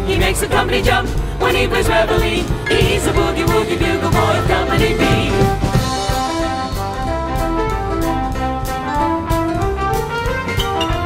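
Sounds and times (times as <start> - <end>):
drum kit steady beat: 0.0 - 11.0
brass instruments playing: 1.6 - 11.0.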